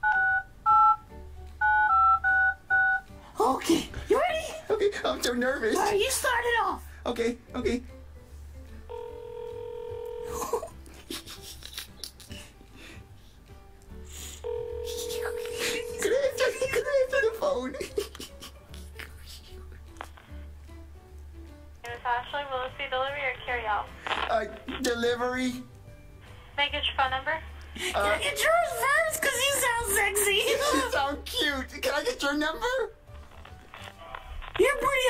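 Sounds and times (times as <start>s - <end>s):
phone keypad beeps: 0.0s - 1.0s, 1.6s - 3.1s
phone ringback tone: 0.0s - 3.1s, 8.9s - 10.3s, 14.4s - 17.6s.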